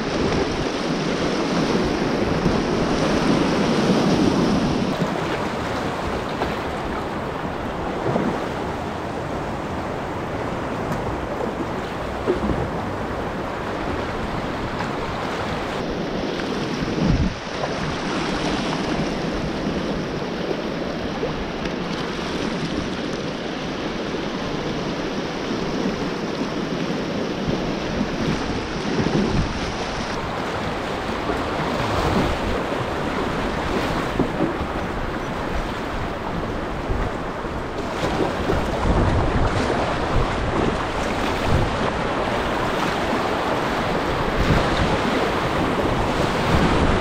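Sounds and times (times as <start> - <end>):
whitewater rushing in river rapid: 0.0 - 47.0.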